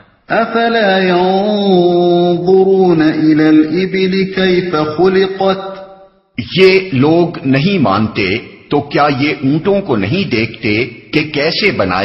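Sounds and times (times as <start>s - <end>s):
single voice chanting recitation: 0.0s - 12.0s.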